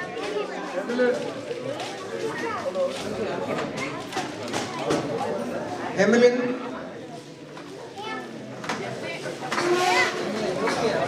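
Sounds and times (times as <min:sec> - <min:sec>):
chatter of children and adults: 0:00.0 - 0:11.0.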